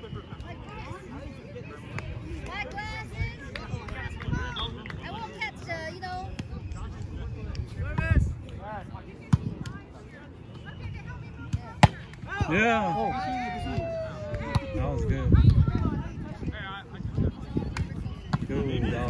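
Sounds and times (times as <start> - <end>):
voices talking and calling out: 0.0 - 19.0.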